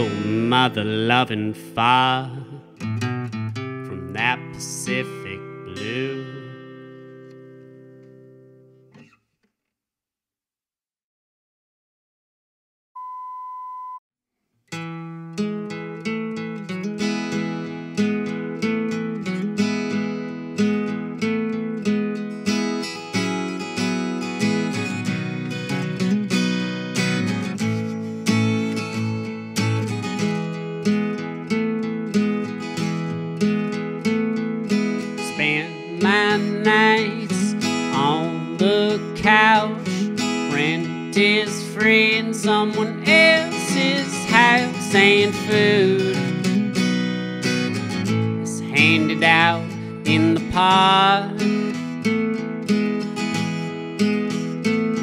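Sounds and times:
strummed acoustic guitar: 0.0 - 9.2, 14.7 - 55.0
short steady beep: 13.0 - 14.0.

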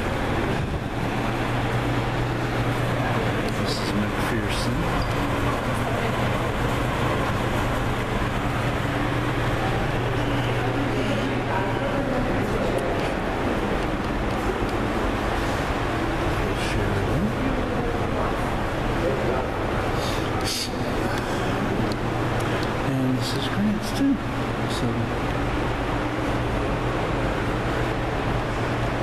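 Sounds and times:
low room rumble: 0.0 - 29.0
steady low hum: 0.0 - 29.0.

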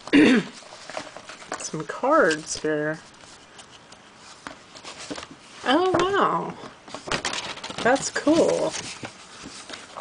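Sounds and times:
paper card rustling: 0.6 - 6.1, 6.9 - 10.0.

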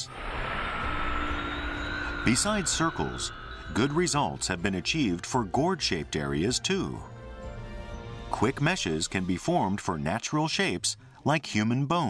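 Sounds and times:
faint high hum: 0.0 - 5.2
rushing engine-like drone: 0.0 - 5.5.

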